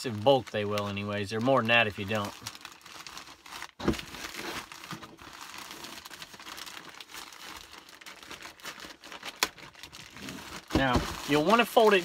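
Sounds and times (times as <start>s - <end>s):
plastic mailer bag crinkling: 0.0s - 12.0s.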